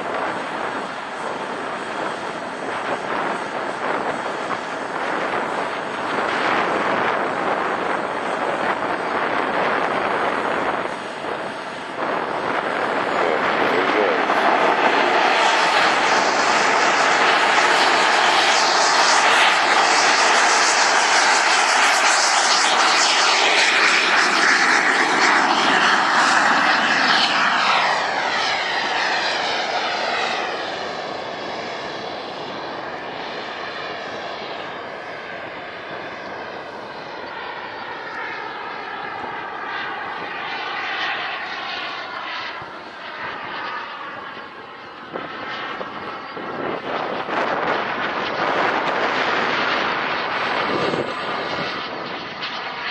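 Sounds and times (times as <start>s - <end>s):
model jet turbine whine: 0.0s - 52.9s.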